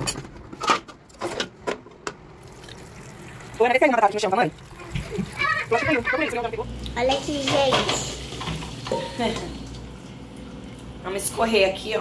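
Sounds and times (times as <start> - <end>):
water splashing into a colander: 2.4 - 6.1.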